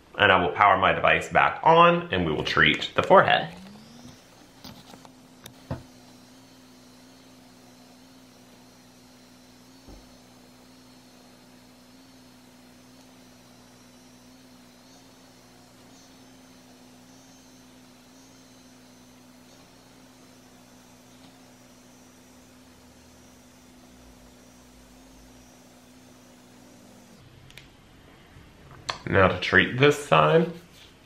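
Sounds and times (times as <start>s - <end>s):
facial device motor humming: 2.4s - 27.8s
soft thump: 5.6s - 5.9s.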